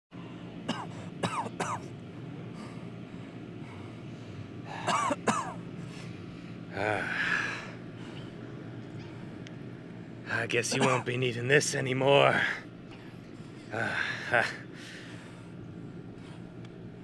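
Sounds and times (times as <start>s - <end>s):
steady low hum: 0.1s - 17.0s
man coughing: 0.7s - 1.9s, 4.7s - 5.6s, 10.6s - 11.2s
man groaning: 6.7s - 7.6s, 13.7s - 14.7s.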